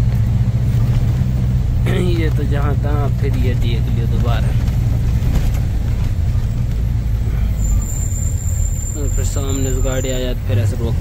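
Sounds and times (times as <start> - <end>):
diesel truck engine rumble: 0.0 - 11.0
road noise: 0.0 - 11.0
high steady whistle: 7.5 - 10.2.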